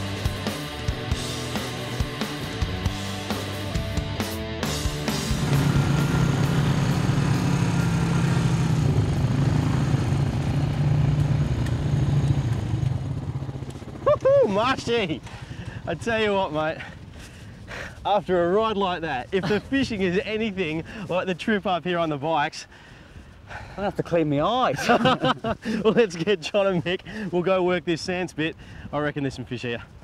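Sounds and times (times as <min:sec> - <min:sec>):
rock music with drums: 0:00.0 - 0:08.7
quad bike engines droning: 0:00.0 - 0:17.1.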